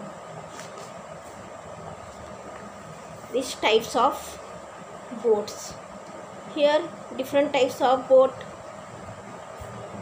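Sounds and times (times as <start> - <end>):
background hum and hiss: 0.0 - 10.0
faint constant tone: 0.0 - 10.0.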